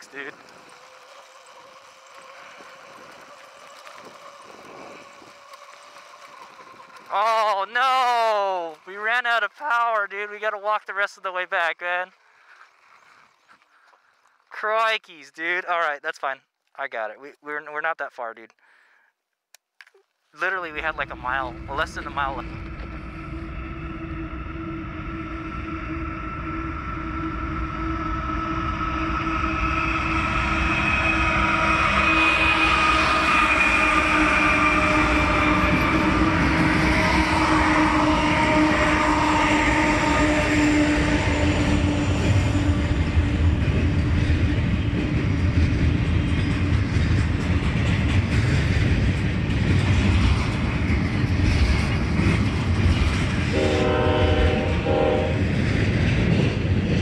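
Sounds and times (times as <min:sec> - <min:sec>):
freight train rumble and rail clatter: 0:20.5 - 0:57.0
diesel locomotive horn: 0:21.4 - 0:43.9, 0:53.5 - 0:55.5.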